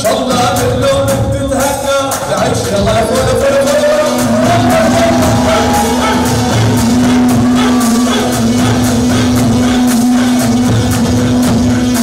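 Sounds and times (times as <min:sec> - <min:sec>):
drums beating fast: 0:00.0 - 0:12.0
band sustained note: 0:02.7 - 0:10.6.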